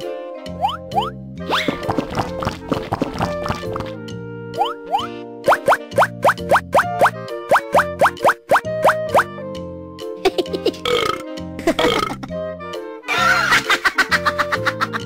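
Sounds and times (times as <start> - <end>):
cartoon background music: 0.0 - 15.0.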